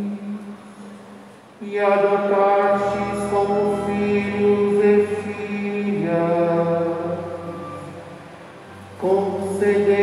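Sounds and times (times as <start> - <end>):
liturgical chant singing: 9.0 - 10.0.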